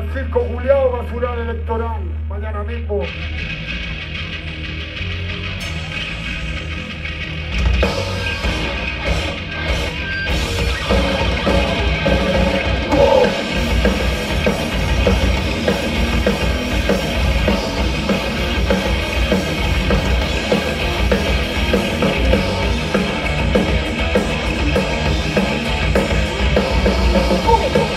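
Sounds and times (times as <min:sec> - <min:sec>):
distorted electric guitars: 0:00.0 - 0:27.9
drum kit: 0:03.1 - 0:27.9.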